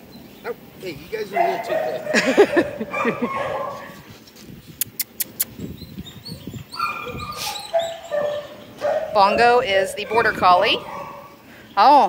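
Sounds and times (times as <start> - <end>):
dog whining: 1.4 - 4.1, 6.0 - 11.4
sharp clicks: 4.8 - 5.5.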